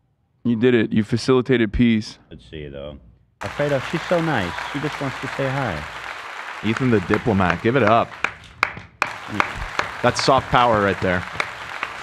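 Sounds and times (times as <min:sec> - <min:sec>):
person clapping hands: 0:03.4 - 0:12.0.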